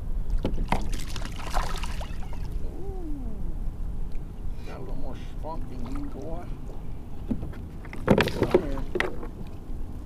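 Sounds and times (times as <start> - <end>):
water sloshing around kayak: 0.3 - 2.6, 5.3 - 9.7.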